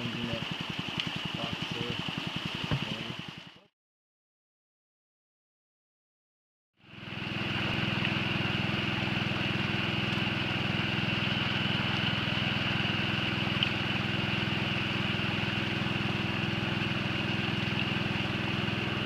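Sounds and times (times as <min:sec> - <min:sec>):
small water pump engine running: 0:00.0 - 0:03.7, 0:06.8 - 0:19.0
water rushing down a sluice: 0:00.0 - 0:03.7, 0:06.9 - 0:19.0.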